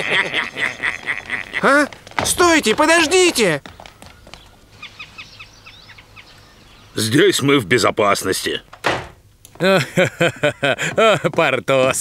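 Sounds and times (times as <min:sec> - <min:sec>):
small birds chirping: 0:00.6 - 0:09.6.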